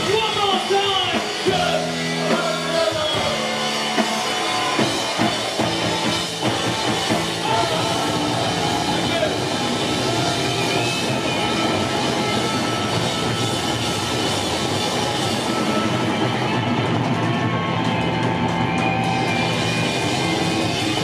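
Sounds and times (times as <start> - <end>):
bass guitar: 0.0 - 21.0
drum kit: 0.0 - 21.0
electric guitar: 0.0 - 21.0.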